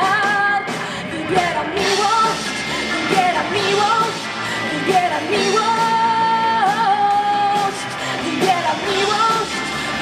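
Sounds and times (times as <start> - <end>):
drums: 0.0 - 10.0
electric guitar: 0.0 - 10.0
woman singing: 0.0 - 10.0.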